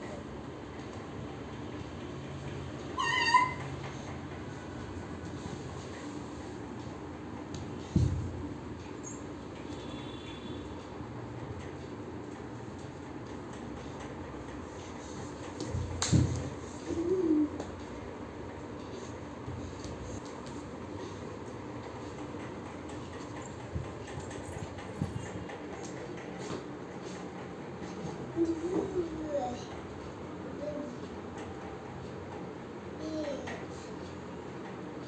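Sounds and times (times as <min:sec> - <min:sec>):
indoor background hum: 0:00.0 - 0:35.0.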